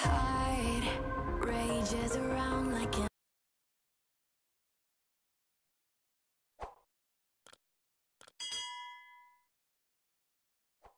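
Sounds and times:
bright bell ding: 8.4 - 9.5.

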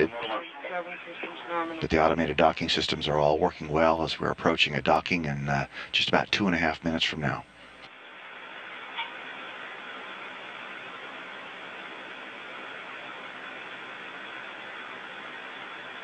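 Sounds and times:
radio channel hiss: 0.0 - 16.0.

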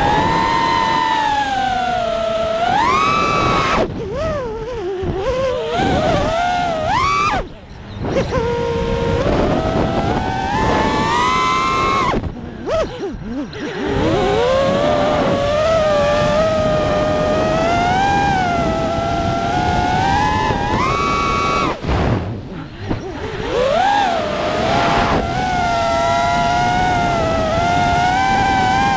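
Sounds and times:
drone motors whining: 0.0 - 28.9.

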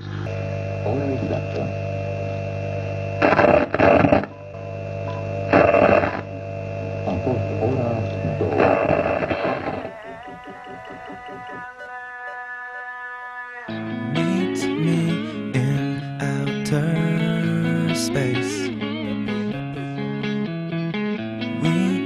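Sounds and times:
steady droning tone: 0.0 - 12.4
pitch-bending voice-like sound: 7.1 - 20.2, 21.6 - 22.0.

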